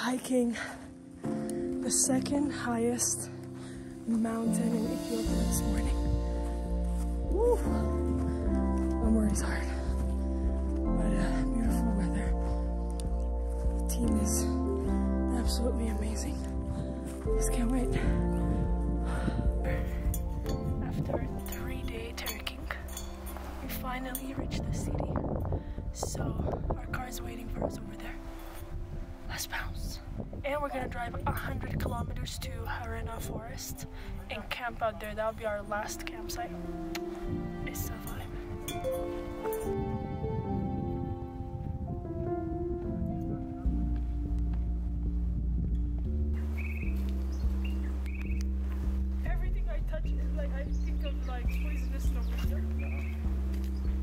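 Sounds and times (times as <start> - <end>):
background music with held notes: 0.0 - 54.0
short bird chirps: 46.5 - 47.0.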